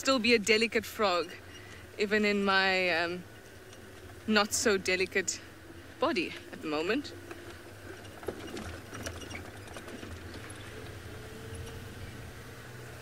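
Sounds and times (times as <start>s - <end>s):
vehicle engine humming: 0.0s - 13.0s
vehicle body knocks and rattles: 7.3s - 11.0s.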